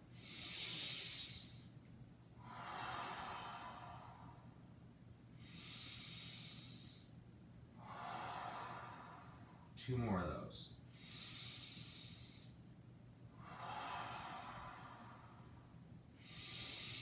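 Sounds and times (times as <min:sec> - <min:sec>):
man breathing slowly: 0:00.0 - 0:09.8, 0:10.8 - 0:17.0.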